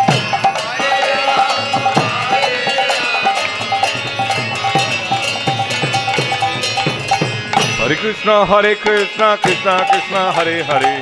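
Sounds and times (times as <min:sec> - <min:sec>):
brass hand cymbals ringing: 0:00.0 - 0:11.0
harmonium: 0:00.0 - 0:11.0
person singing a chant: 0:00.6 - 0:06.5.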